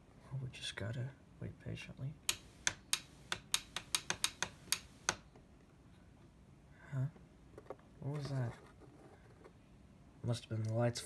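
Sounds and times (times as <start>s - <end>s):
sharp clicks: 2.3s - 5.3s.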